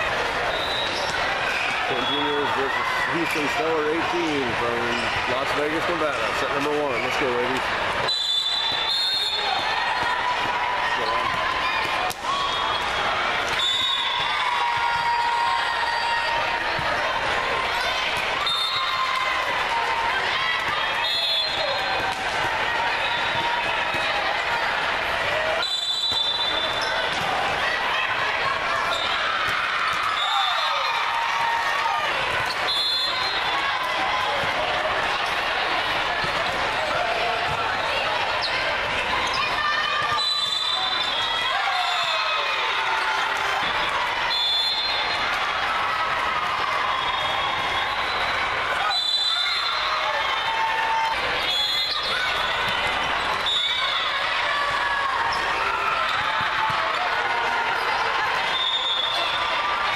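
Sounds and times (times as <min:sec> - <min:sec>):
many voices and calls: 0:00.0 - 0:59.9
referee whistle blasts: 0:00.5 - 0:02.5, 0:08.0 - 0:09.6, 0:12.4 - 0:14.3, 0:18.4 - 0:19.0, 0:21.0 - 0:21.8, 0:25.6 - 0:27.0, 0:32.6 - 0:33.5, 0:40.1 - 0:42.4, 0:44.3 - 0:45.2, 0:47.0 - 0:50.0, 0:51.5 - 0:52.2, 0:58.5 - 0:59.4
volleyballs struck and bouncing: 0:03.2 - 0:15.7, 0:16.3 - 0:41.4.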